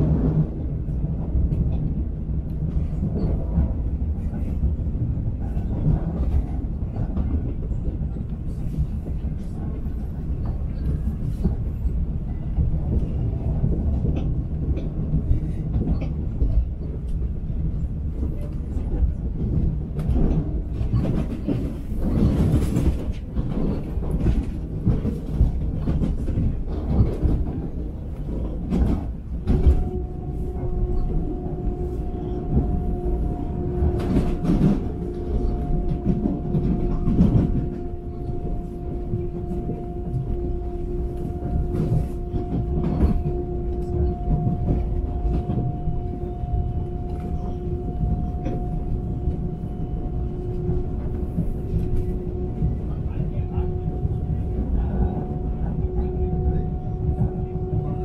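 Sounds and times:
train rumbling: 0:00.0 - 0:58.0.

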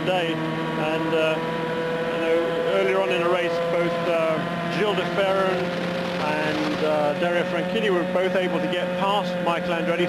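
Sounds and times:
race car engine running steadily: 0:00.0 - 0:10.0.

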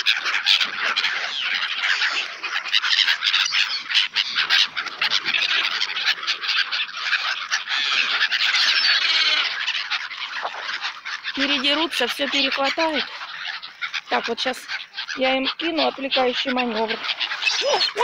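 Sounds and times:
gulls calling and squawking: 0:00.0 - 0:18.0.

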